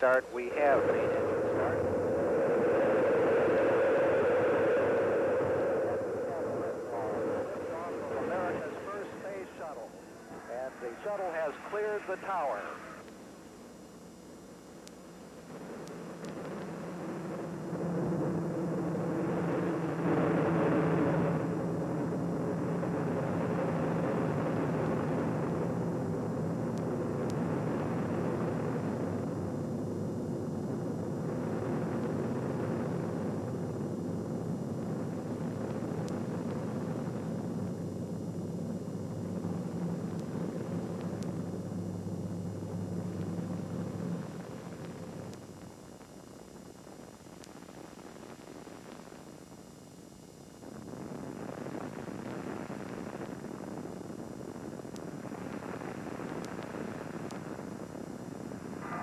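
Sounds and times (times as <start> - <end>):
rocket engines rumbling: 0.0 - 13.0, 58.0 - 59.0.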